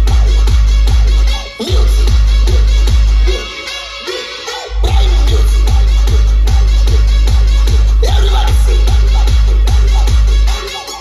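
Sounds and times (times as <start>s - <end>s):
electronic dance music with heavy bass: 0.0s - 11.0s.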